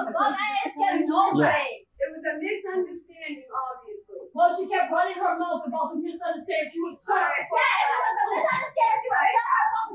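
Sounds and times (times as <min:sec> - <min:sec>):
other voices: 0:00.0 - 0:01.9.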